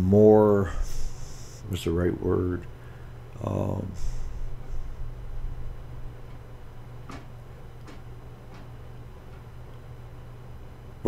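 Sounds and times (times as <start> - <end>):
low steady hum: 0.0 - 11.0
low rumble: 2.1 - 7.8.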